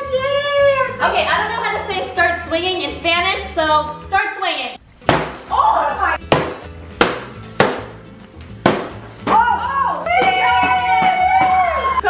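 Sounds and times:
background music: 0:00.0 - 0:12.0
stick whacking paper pinata: 0:05.1 - 0:05.5, 0:06.3 - 0:08.0, 0:08.6 - 0:09.6.

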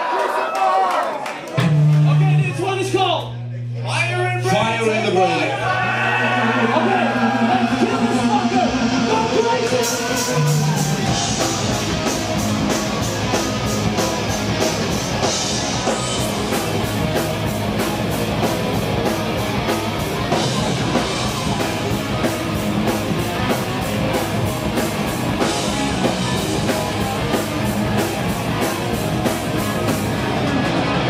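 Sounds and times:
heavy metal band playing live: 0:05.2 - 0:31.0.

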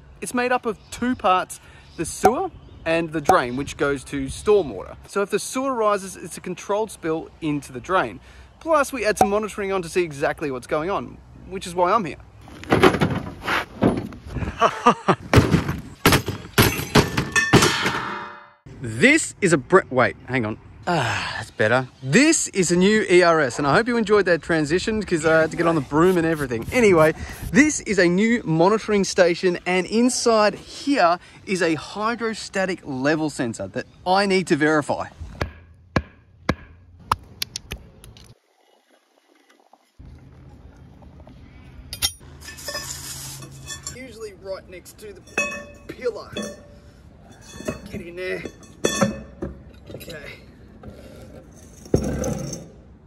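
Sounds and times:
thuds knocks and clangs: 0:12.6 - 0:14.2, 0:15.2 - 0:18.6
metal keys tapping on concrete cover: 0:41.9 - 0:42.9, 0:45.2 - 0:50.3.

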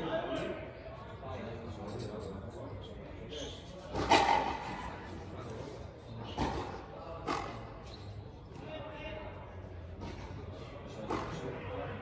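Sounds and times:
people talking: 0:08.5 - 0:12.0.

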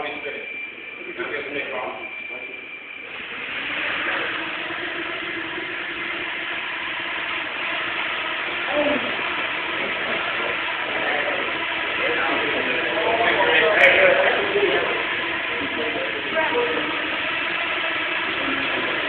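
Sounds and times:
drone propellers buzzing: 0:00.0 - 0:19.0.

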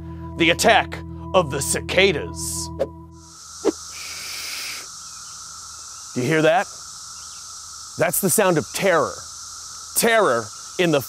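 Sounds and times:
cicadas high-pitched hiss: 0:03.1 - 0:11.0.

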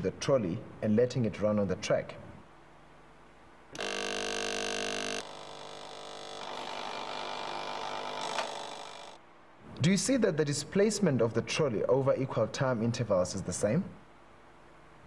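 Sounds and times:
ticker timer buzzing: 0:03.8 - 0:09.2.

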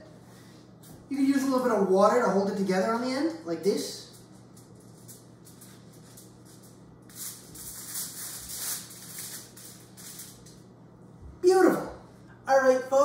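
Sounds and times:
aluminium foil crinkling: 0:04.0 - 0:10.6.

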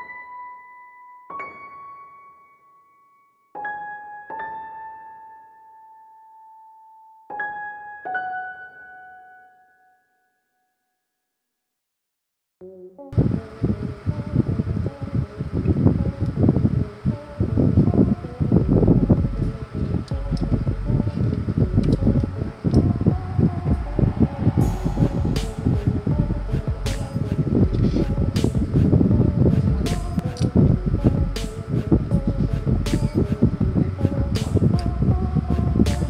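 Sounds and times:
whirring fan-like rumble: 0:13.2 - 0:36.0.

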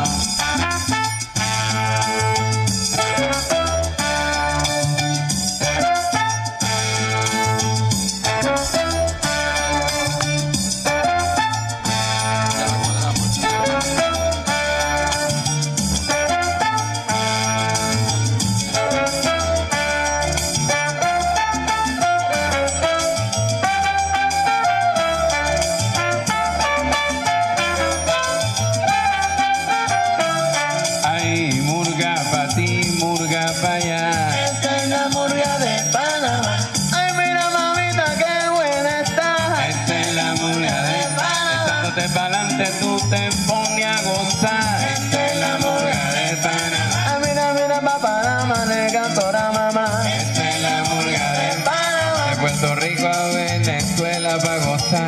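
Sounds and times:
bass line: 0:00.0 - 0:55.0
steady percussion: 0:00.0 - 0:55.0
trumpet melody: 0:00.0 - 0:55.0.

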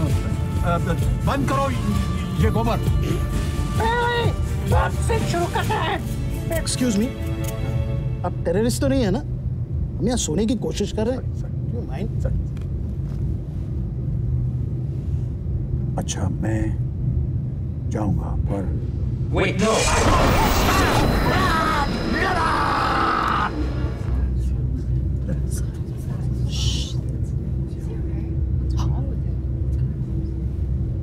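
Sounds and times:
airliner cabin engine drone: 0:08.8 - 0:31.0.

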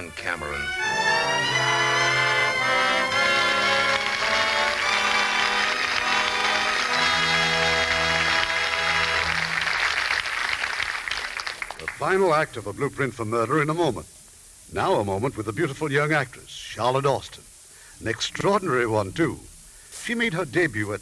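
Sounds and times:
orchestral music: 0:00.0 - 0:10.1.

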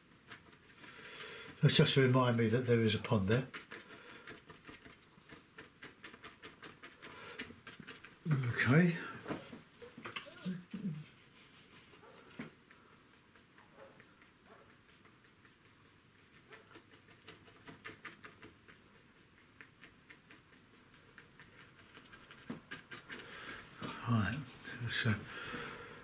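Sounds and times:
paintbrush scratching on paper: 0:00.2 - 0:25.3.

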